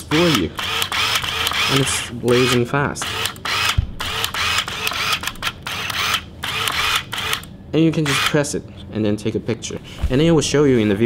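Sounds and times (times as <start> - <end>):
autofocus mechanism whirring: 0.0 - 8.4.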